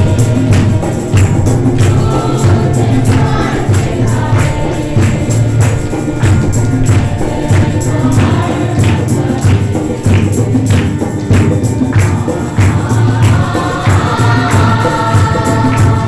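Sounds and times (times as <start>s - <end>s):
congregation singing: 0.0s - 16.0s
steady percussive beat: 0.0s - 16.0s.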